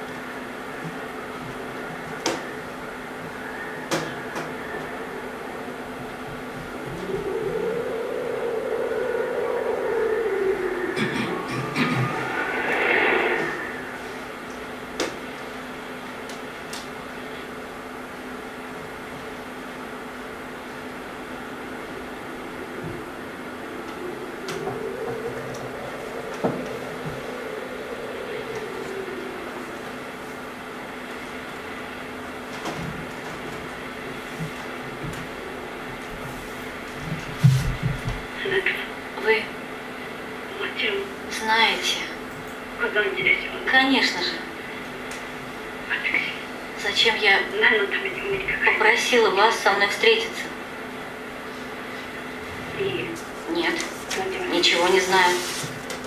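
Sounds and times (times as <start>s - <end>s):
low even hum: 0.0s - 56.0s
film soundtrack over loudspeakers: 0.7s - 15.5s.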